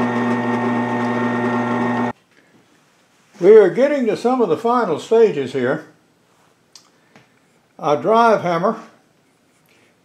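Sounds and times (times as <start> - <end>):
drill press motor hum: 0.0 - 2.1.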